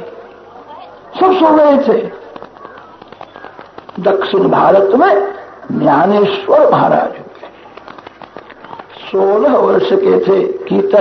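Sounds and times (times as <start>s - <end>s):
faint crackling clicks: 7.3s - 9.0s.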